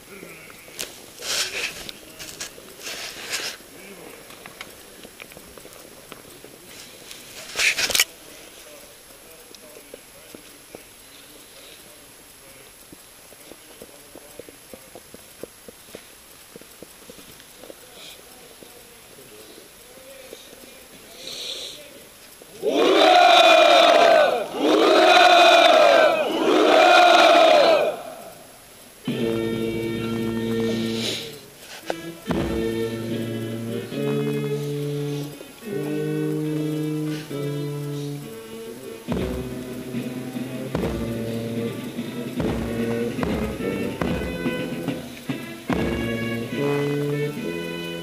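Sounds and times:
crowd murmur: 0.0 - 48.0
soldiers shouting hurrah: 22.5 - 28.5
national anthem music: 22.6 - 48.0.

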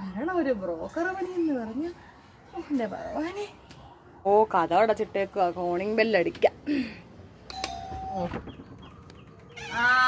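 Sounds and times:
doorbell ringing: 7.5 - 8.3.

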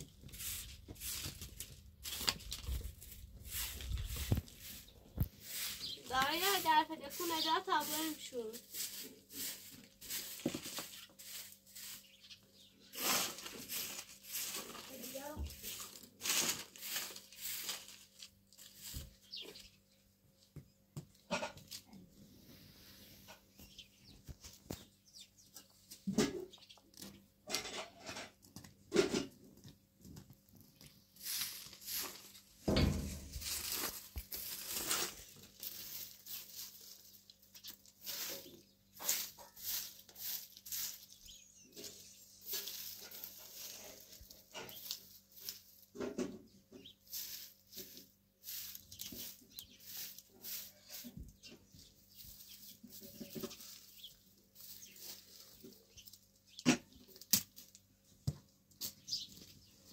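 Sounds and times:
broom sweeping dirt: 0.0 - 19.8, 22.2 - 24.9, 31.0 - 46.0, 46.7 - 56.3.

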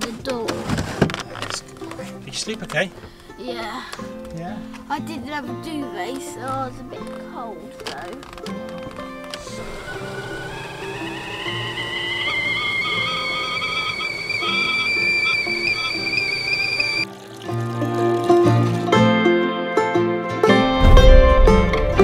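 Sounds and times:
background music: 0.0 - 22.0
kettle whistling: 9.4 - 17.1.

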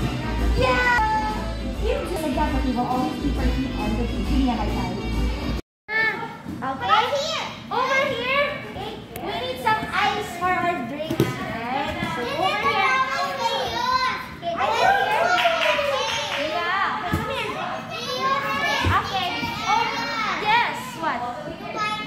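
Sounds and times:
children chattering and calling: 6.8 - 22.0.

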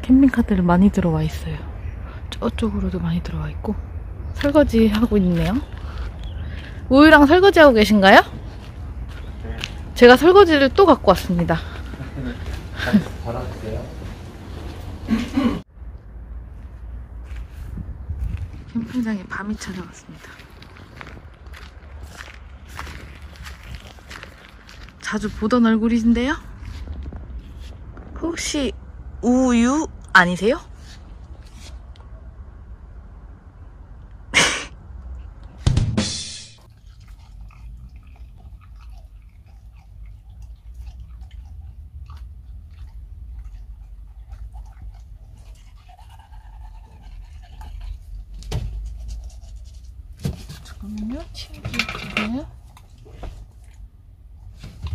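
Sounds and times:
footsteps walking on ground: 8.2 - 10.0, 11.4 - 15.0, 16.5 - 28.0
brush scratching on teeth: 44.7 - 48.2.

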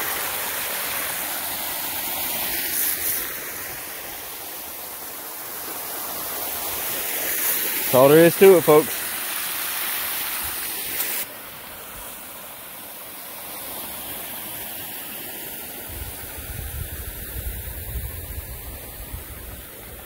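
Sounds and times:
steady hiss: 0.0 - 20.0
water rushing over leaf litter: 0.0 - 20.0.

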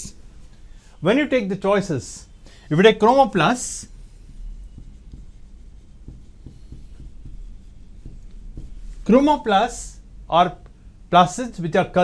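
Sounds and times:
marker writing on whiteboard: 2.8 - 9.8.

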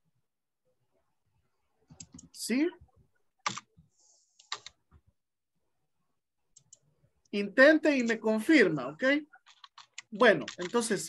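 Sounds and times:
computer clicks: 3.4 - 3.7, 4.4 - 4.8, 6.5 - 6.9, 9.4 - 10.9.

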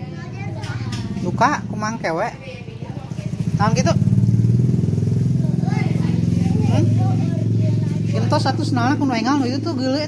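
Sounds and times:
engine idling: 0.0 - 10.0
faint voices: 5.2 - 10.0.

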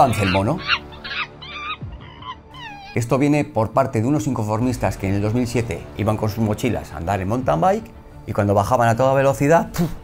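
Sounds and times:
high-pitched animal calls: 0.0 - 3.0
quiet background music: 0.0 - 10.0.

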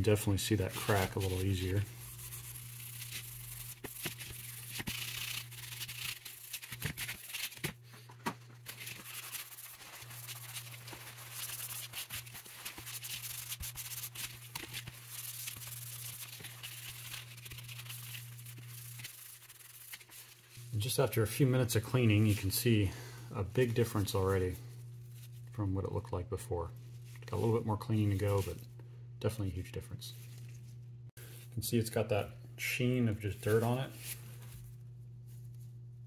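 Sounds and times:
low steady hum: 0.0 - 36.0.

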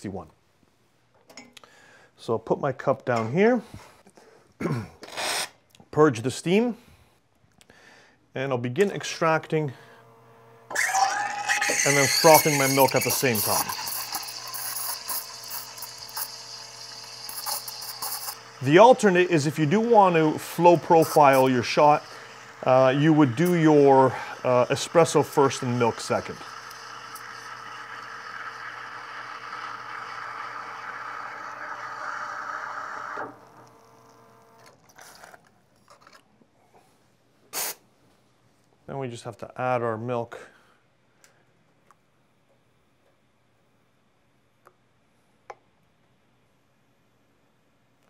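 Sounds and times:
espresso machine pump humming: 9.9 - 34.7
steam wand hissing: 10.7 - 30.6.

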